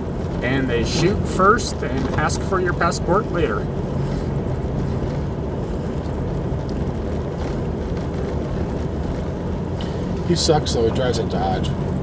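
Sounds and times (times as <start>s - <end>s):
vehicle driving on gravel: 0.0s - 12.0s.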